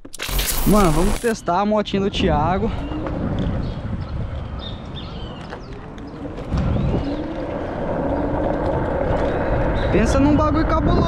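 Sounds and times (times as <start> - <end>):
road noise: 0.0 - 11.0
wind rushing over microphone: 0.7 - 11.0.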